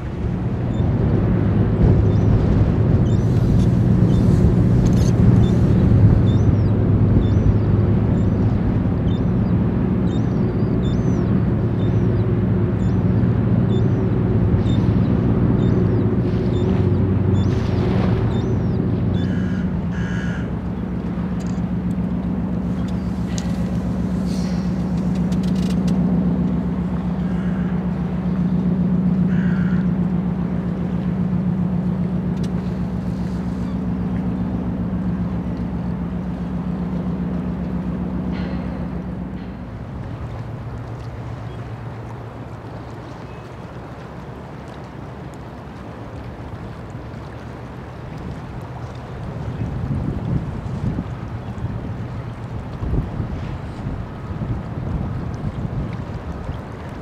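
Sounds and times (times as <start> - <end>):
ship diesel engines droning: 0.0 - 57.0
bird calls: 2.0 - 21.8, 27.0 - 29.9, 38.3 - 44.9.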